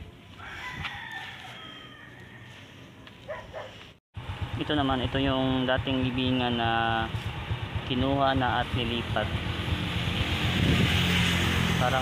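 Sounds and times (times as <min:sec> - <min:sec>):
rooster crowing faintly: 0:00.3 - 0:03.7.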